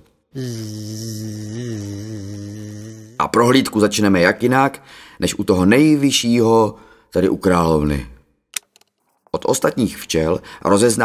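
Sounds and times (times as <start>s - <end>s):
man imitating bee buzz: 0.3s - 3.8s.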